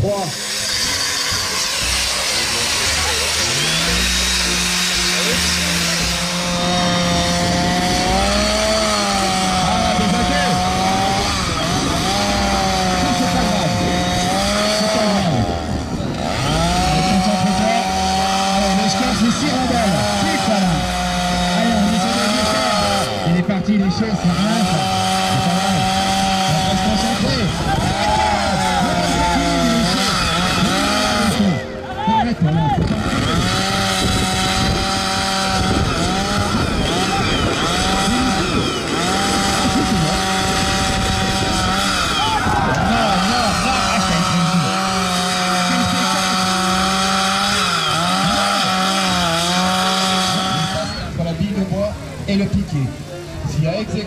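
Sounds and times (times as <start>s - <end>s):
chainsaw cutting wood: 0.0s - 54.0s.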